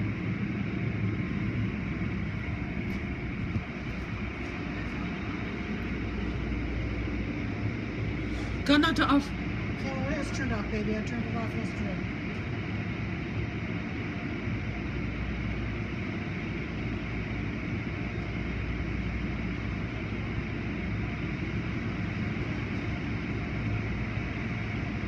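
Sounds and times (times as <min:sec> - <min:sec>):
low machinery hum: 0:00.0 - 0:25.0.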